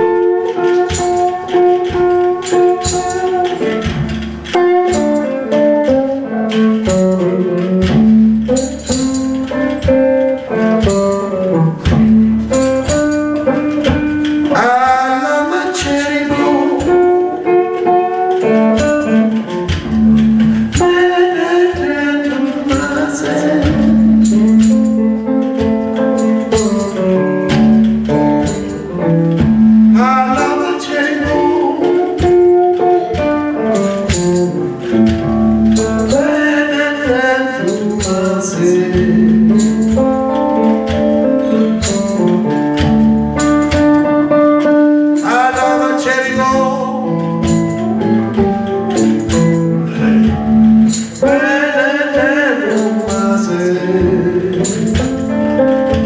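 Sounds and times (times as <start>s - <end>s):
light drums: 0.0s - 15.2s
drum strokes: 0.0s - 56.0s
electric guitar: 0.0s - 56.0s
tambourine: 0.0s - 56.0s
man singing: 12.6s - 27.3s, 28.4s - 42.6s, 43.8s - 56.0s.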